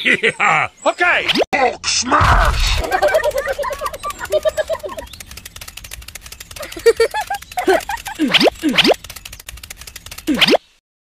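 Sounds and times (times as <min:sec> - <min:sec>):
fast clicking rattle: 0:02.8 - 0:10.6
short squeaky chirps: 0:03.2 - 0:10.6.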